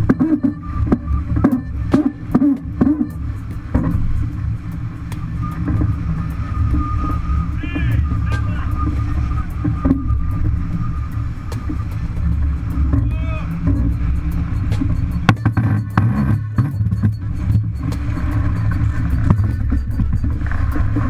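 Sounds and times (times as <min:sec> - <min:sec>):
faint steady whine: 0:00.0 - 0:21.0
water rushing past hull: 0:00.0 - 0:21.0
wind buffeting microphone: 0:00.0 - 0:21.0
people shouting: 0:13.0 - 0:13.6.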